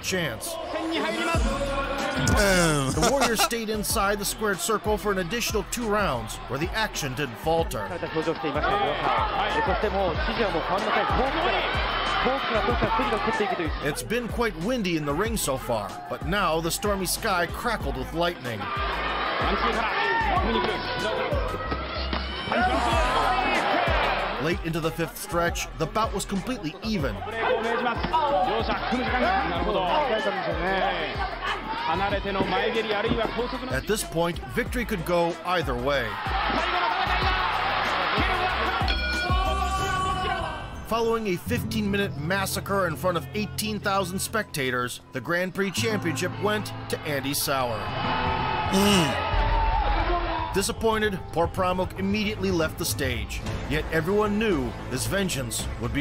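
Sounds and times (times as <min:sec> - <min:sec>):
man talking excitedly: 0:00.0 - 0:11.5, 0:12.4 - 0:18.7, 0:24.4 - 0:31.1, 0:31.9 - 0:36.2
background music: 0:00.0 - 0:56.0.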